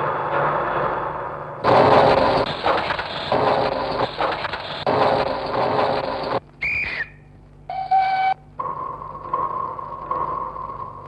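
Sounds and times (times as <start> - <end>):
noisy rattling: 0.0 - 6.6, 8.4 - 11.0.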